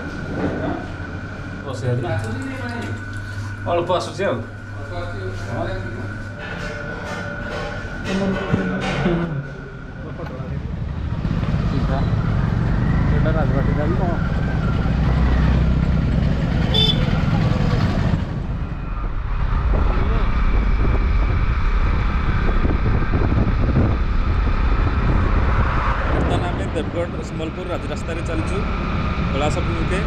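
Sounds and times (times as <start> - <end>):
motorcycle engine running: 10.6 - 18.6
wind buffeting microphone: 17.9 - 30.0.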